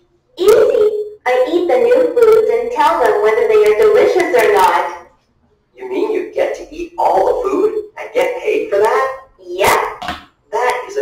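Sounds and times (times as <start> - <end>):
person talking: 0.4 - 5.1, 5.8 - 11.0.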